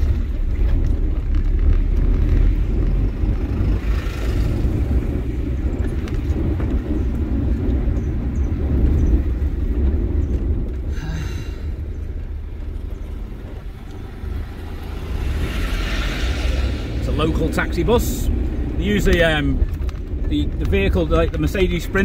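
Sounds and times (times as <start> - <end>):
car engine and road noise: 0.0 - 22.0.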